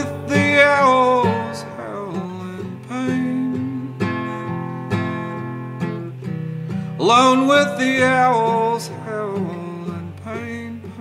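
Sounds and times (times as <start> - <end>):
acoustic guitar strummed: 0.0 - 11.0.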